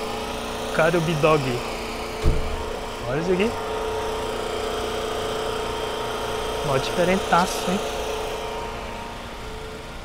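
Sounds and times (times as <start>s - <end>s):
motor humming: 0.0s - 10.0s.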